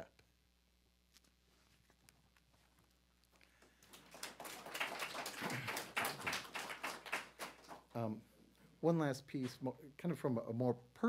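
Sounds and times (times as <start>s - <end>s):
audience applauding: 3.6s - 8.0s.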